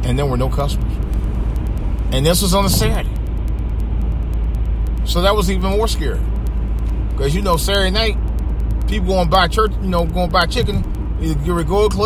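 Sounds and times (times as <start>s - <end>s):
faint fast ticking: 0.0s - 12.0s
low rumble with hiss: 0.0s - 12.0s.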